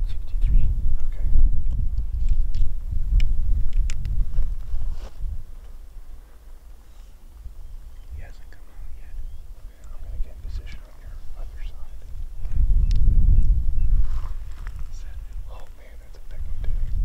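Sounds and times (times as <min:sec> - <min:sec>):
hushed whispering: 0:00.0 - 0:01.4, 0:08.0 - 0:12.2, 0:14.7 - 0:16.9
wind rumble on microphone: 0:00.0 - 0:17.0.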